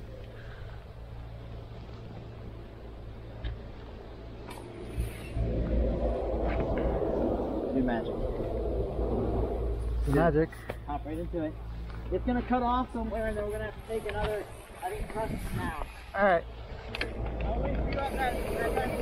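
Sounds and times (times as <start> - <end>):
wind buffeting microphone: 2.3 - 19.0.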